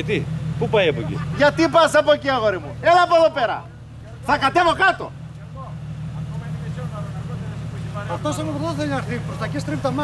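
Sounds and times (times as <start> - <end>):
engine running at low revs: 0.0 - 10.0.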